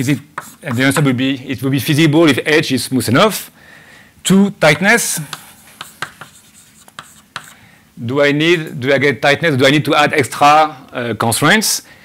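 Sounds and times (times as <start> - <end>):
chalk tapping and scratching: 0.0 - 1.1, 5.2 - 7.6.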